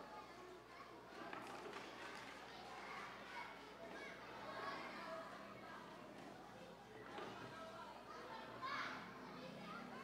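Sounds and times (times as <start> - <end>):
chatter of many people: 0.0 - 10.0.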